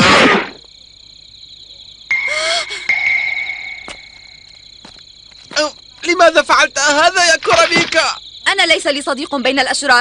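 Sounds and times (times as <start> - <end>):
high insect chirring: 0.2 - 10.0
held ringing tone: 2.1 - 4.6.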